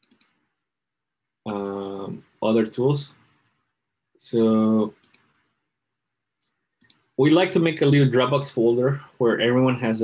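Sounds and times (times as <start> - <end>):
computer mouse clicks: 0.0 - 0.4, 4.9 - 5.4, 6.4 - 7.2.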